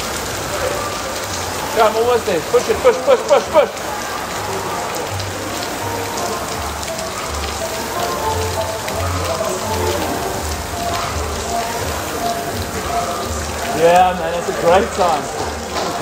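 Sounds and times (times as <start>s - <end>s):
faint background music: 0.0s - 16.0s
rain on a roof: 0.0s - 16.0s.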